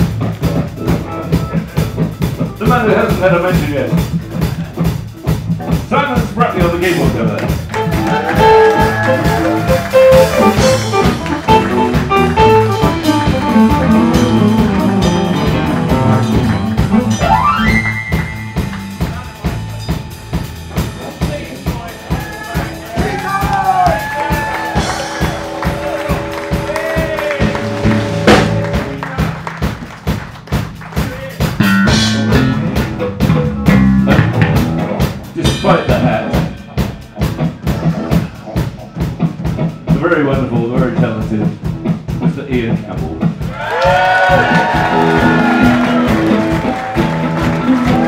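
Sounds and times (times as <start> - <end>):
bass line: 0.0 - 48.0
drum beat: 0.0 - 48.0
keyboard solo: 7.7 - 29.4, 43.9 - 48.0.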